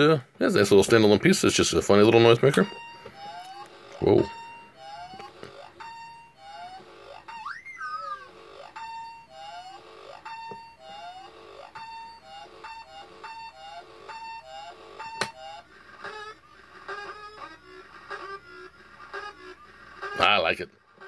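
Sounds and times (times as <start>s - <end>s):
toy sound chip stuttering tune: 2.0s - 21.0s.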